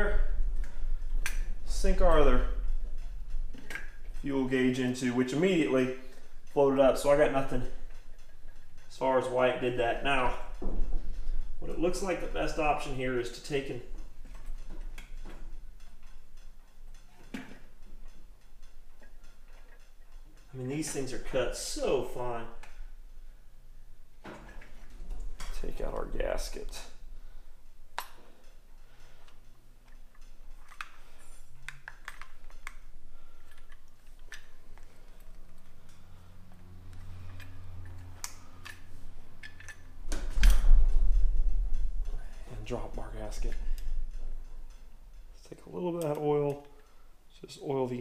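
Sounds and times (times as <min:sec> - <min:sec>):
low steady hum: 0:00.0 - 0:48.0
light clicks of small parts: 0:12.2 - 0:23.3, 0:24.2 - 0:48.0.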